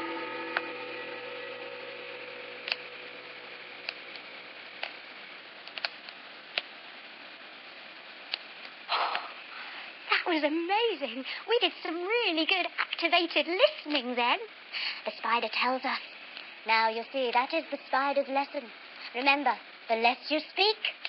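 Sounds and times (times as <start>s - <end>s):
gong ringing: 0.0s - 4.7s
faint clicks: 5.6s - 6.7s.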